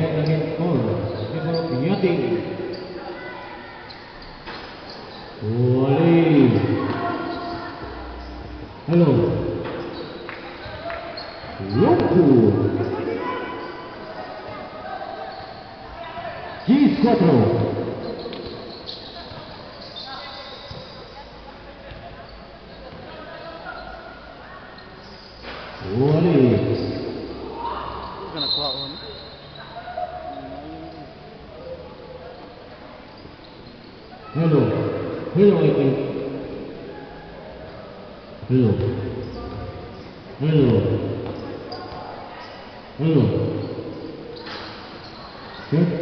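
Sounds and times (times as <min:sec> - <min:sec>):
spectators chattering in hall: 0:00.0 - 0:46.0.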